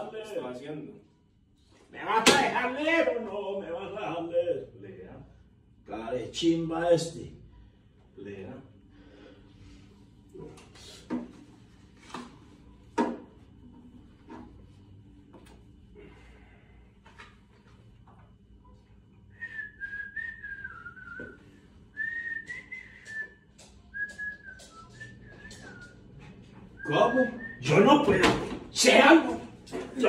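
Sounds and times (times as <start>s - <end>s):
person whistling a tune: 19.4s - 26.0s, 26.8s - 27.6s.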